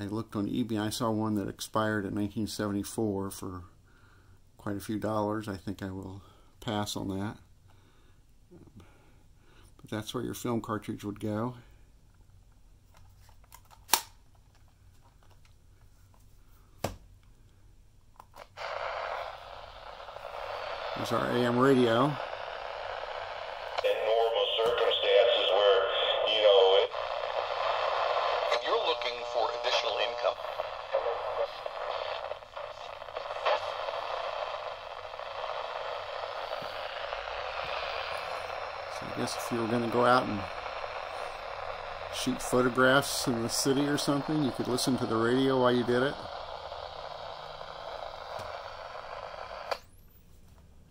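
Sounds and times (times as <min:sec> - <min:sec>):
radio static hiss: 0:18.4 - 0:50.0
faint radio crackles: 0:18.4 - 0:50.2.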